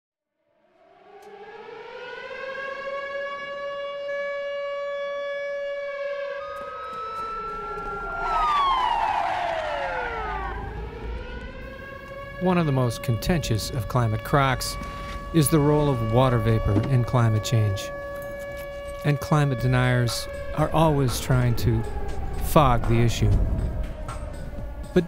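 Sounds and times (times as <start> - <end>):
siren wailing: 0.6 - 25.0
tone sliding down in pitch: 6.4 - 12.3
low rumble: 7.8 - 12.4, 20.2 - 25.0.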